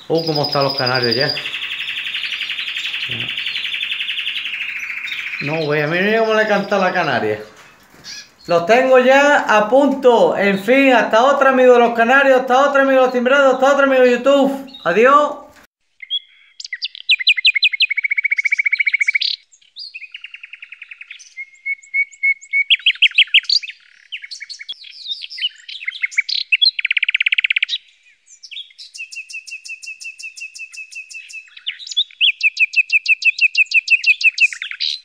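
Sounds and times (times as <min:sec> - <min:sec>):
canary singing trills: 0:00.0 - 0:35.0.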